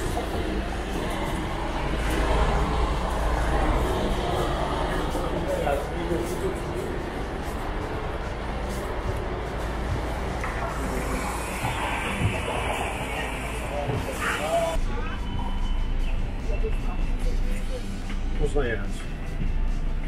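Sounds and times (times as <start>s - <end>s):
bus engine idling: 0.0s - 18.1s
faint voices: 0.0s - 18.4s.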